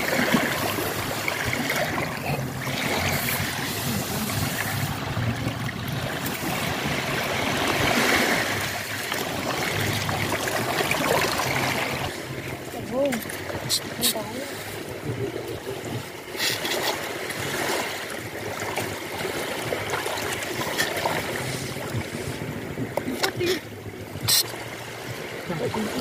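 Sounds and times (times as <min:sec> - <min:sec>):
small waves washing on sand: 0:00.0 - 0:26.0.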